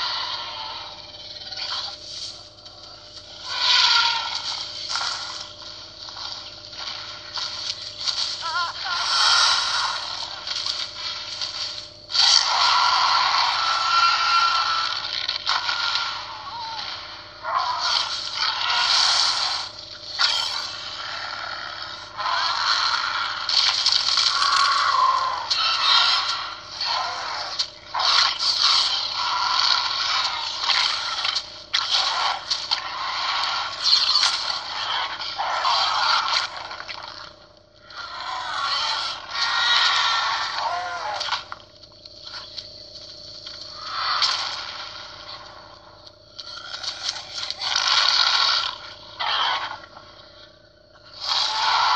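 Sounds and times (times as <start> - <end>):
dinosaur roars: 0.0 - 1.9, 3.2 - 5.5, 6.8 - 11.2, 12.1 - 37.1, 37.9 - 41.4, 46.6 - 49.9, 51.1 - 51.9.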